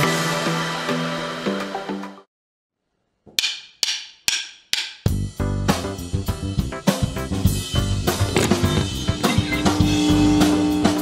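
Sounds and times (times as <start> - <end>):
background music: 0.0 - 2.2, 4.8 - 11.0
drum beat: 8.1 - 10.1.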